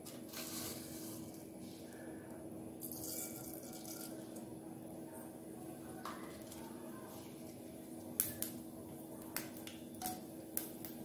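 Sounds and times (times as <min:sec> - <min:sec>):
faint steady hum: 0:00.0 - 0:11.0
seeds popping in hot oil: 0:08.0 - 0:11.0.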